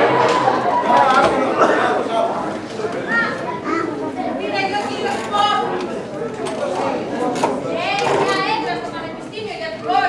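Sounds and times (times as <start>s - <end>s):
audience chatter: 0.0s - 10.0s
children's high-pitched voices: 3.0s - 4.9s.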